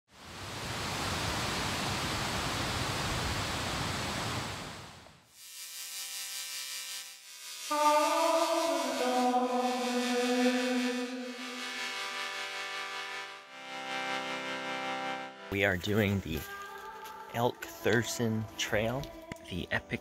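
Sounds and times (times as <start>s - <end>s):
music of long held notes: 7.7s - 20.0s.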